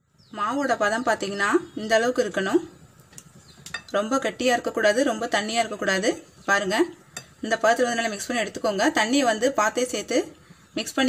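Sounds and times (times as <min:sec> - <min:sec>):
wire clicking against glass: 0:03.0 - 0:04.0.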